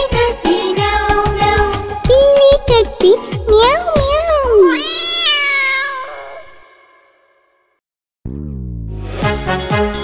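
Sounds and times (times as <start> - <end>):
cat meowing: 4.3 - 6.9.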